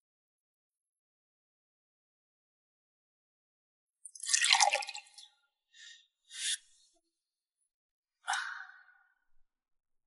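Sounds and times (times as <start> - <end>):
liquid pouring into a cup: 4.1 - 5.2.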